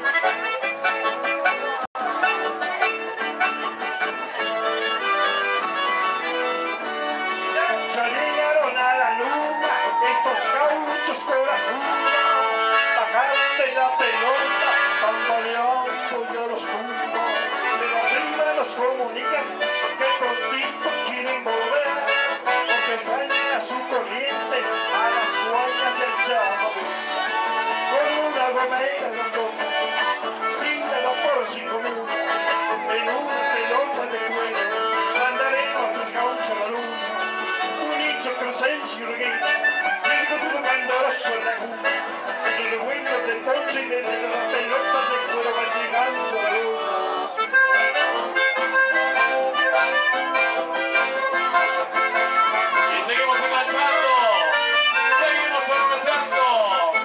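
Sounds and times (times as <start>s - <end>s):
accordion melody: 0.0s - 57.0s
acoustic guitar: 0.0s - 57.0s.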